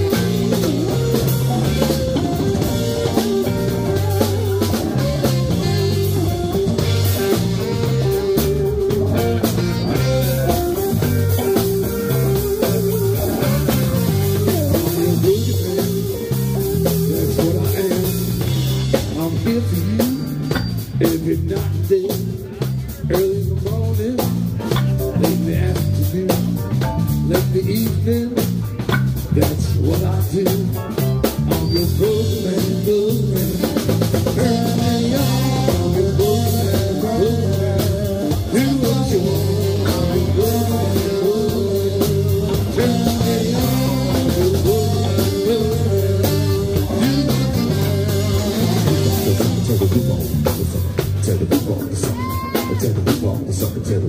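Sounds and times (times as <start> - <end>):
drum kit beat: 0.0 - 54.0
electric guitars: 0.0 - 54.0
keyboard: 0.0 - 54.0.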